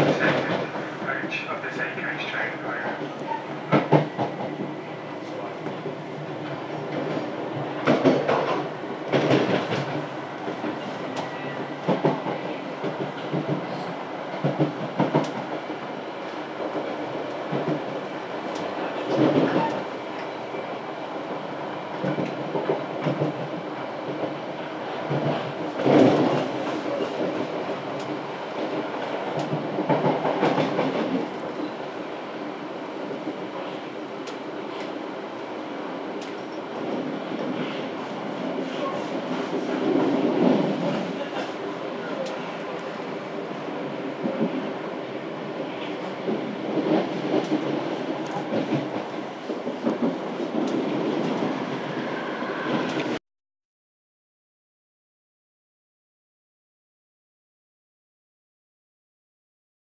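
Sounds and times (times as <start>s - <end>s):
train wheels rumbling on track: 0.0s - 53.2s.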